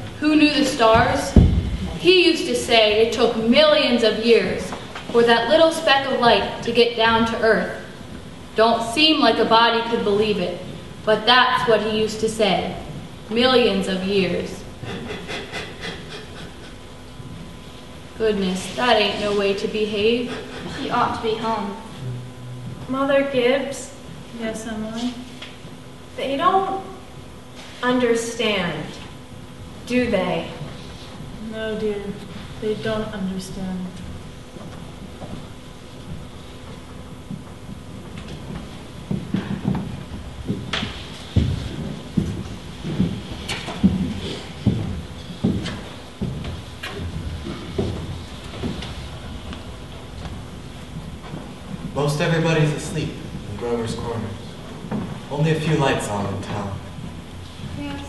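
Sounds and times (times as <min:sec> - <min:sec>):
heavy footsteps on wooden floor: 0:00.8 - 0:02.2, 0:34.5 - 0:52.0, 0:54.8 - 0:55.3.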